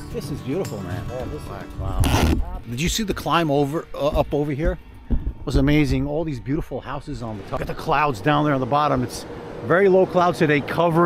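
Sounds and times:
man talking: 0.0s - 4.8s, 5.4s - 11.0s
background music: 0.0s - 8.3s.

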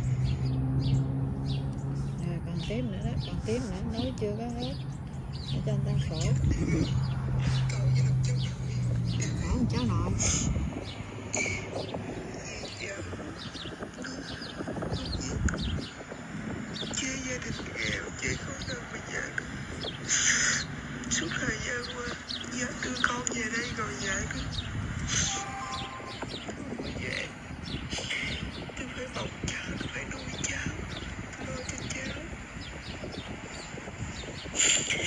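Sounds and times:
small birds chirping: 0.0s - 35.0s
steady low hum: 0.0s - 35.0s.

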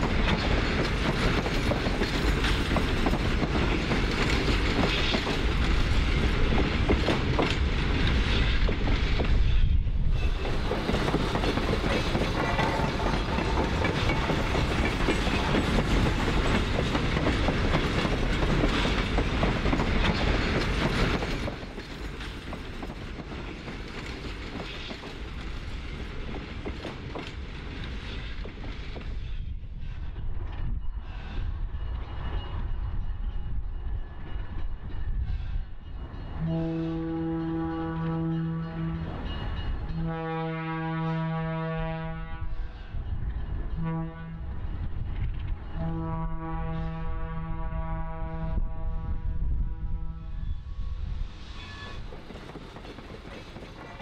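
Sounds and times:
freight train wheels clicking and rattling: 0.0s - 36.4s, 44.4s - 45.9s, 51.4s - 54.0s.

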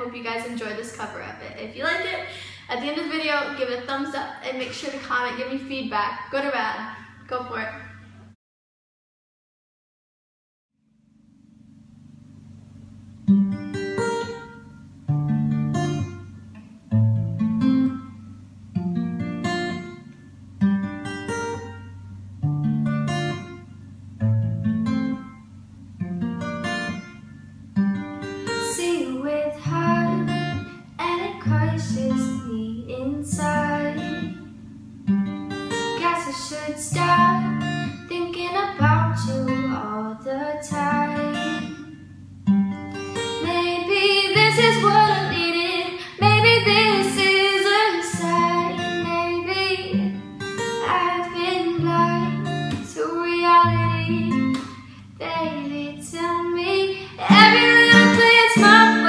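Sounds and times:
acoustic guitar strumming: 11.4s - 59.0s
young woman singing: 28.5s - 34.4s, 36.0s - 41.9s, 43.3s - 50.2s, 50.8s - 59.0s.

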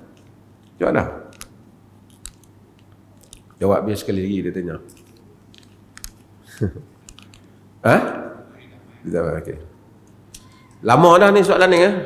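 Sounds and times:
man speaking: 3.6s - 4.9s, 10.8s - 12.0s.

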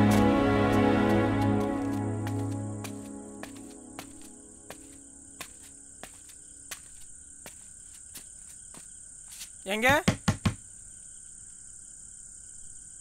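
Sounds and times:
soft background music: 0.0s - 6.8s
high cricket trill: 1.5s - 13.0s.

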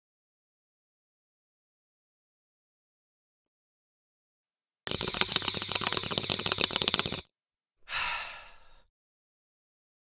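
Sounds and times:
crackling hiss with rapid clicks: 4.9s - 7.3s
breathy exhale: 7.9s - 8.9s.

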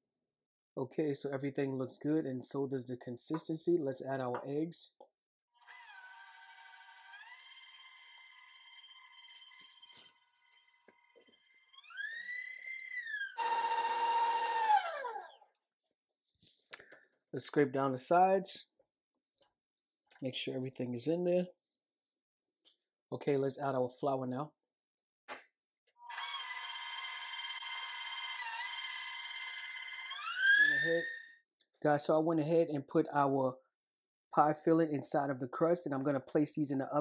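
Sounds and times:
stand mixer motor whining: 5.6s - 15.4s, 26.1s - 30.8s.

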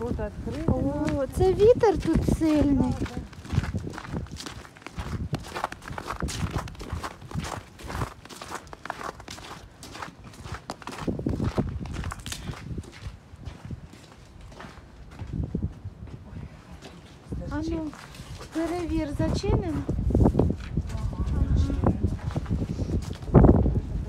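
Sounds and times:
footsteps on snow: 0.0s - 23.7s
wind buffeting microphone: 0.0s - 24.0s.

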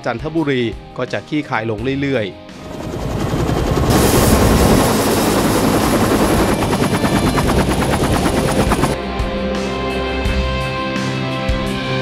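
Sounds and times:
helicopter rotor chopping: 2.6s - 9.0s.

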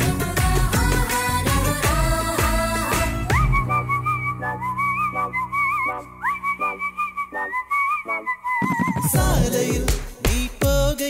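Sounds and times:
whistled melody with vibrato: 3.0s - 9.3s.

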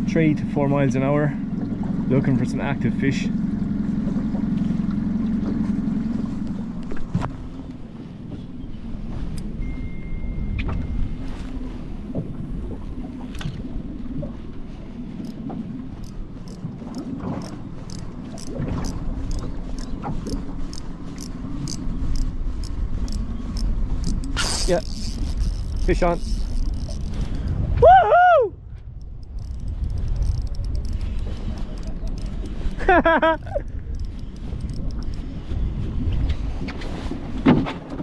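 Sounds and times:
water lapping against boat: 0.0s - 27.9s, 28.7s - 38.0s
wind buffeting microphone: 3.5s - 38.0s
fishing reel ticking: 15.2s - 15.4s, 16.0s - 27.6s, 28.9s - 35.4s.

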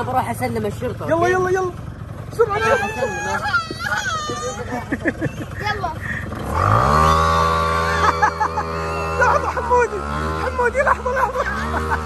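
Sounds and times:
children calling out: 2.4s - 6.2s, 7.8s - 11.9s.

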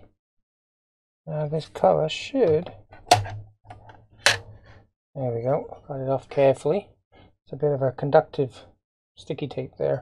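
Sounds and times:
plastic case cover clicking: 3.1s - 3.4s.

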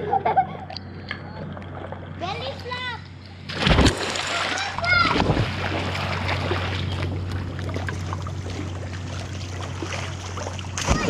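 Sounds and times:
water churning and sloshing: 0.7s - 11.0s
child splashing into pool: 3.5s - 11.0s.

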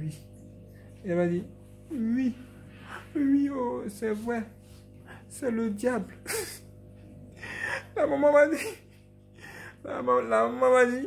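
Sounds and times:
man breathing: 9.4s - 9.8s.

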